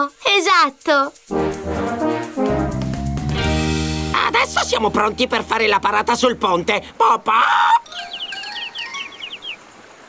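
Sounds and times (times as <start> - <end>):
soft background music: 0.0 - 6.9
cartoon chicks peeping: 7.3 - 9.6.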